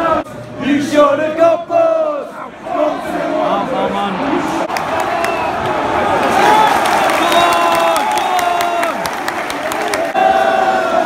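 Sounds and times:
football crowd chanting: 0.0s - 11.0s.

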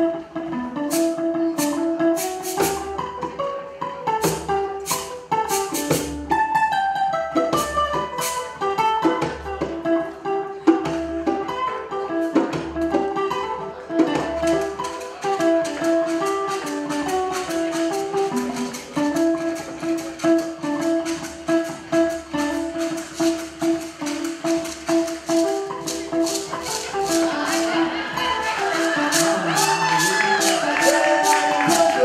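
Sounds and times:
acoustic guitar picking a melody: 0.0s - 32.0s
hand percussion steady rhythm: 0.0s - 32.0s.

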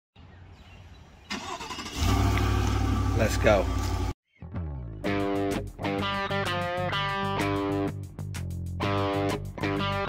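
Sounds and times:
vehicle engine rumbling: 1.3s - 4.2s.

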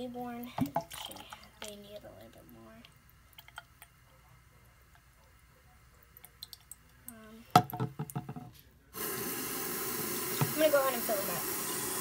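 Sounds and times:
tap water running into sink: 0.5s - 2.4s, 7.6s - 12.0s.

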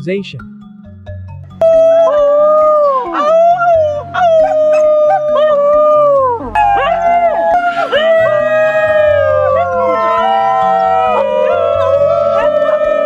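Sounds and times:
background music with low notes: 0.0s - 13.0s
dog howling: 1.6s - 13.0s
second dog howling: 1.6s - 13.0s.

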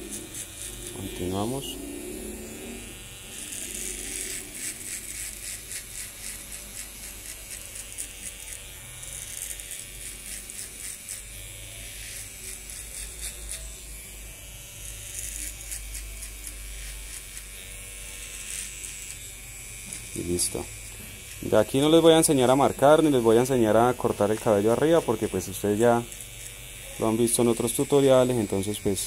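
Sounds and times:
electric hair clipper cutting hair: 0.0s - 29.0s.

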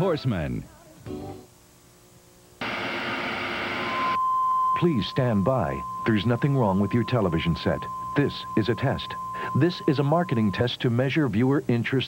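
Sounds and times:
tv static hiss: 0.0s - 4.2s, 4.8s - 12.0s.

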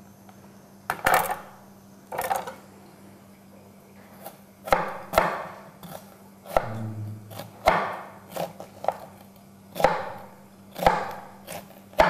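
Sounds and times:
knife cutting onion on wooden board: 4.2s - 9.1s, 9.7s - 12.0s.

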